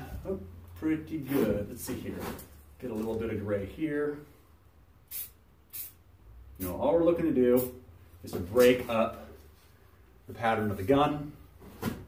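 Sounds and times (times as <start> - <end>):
spray paint can spurts: 5.1 - 6.0.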